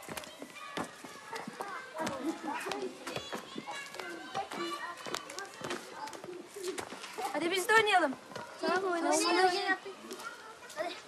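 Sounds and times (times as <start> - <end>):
children shouting: 0.0 - 7.2.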